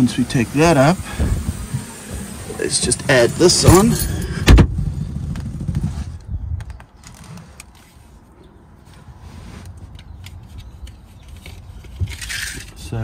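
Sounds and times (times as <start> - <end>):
low rumbling handling noise: 1.2 - 12.9.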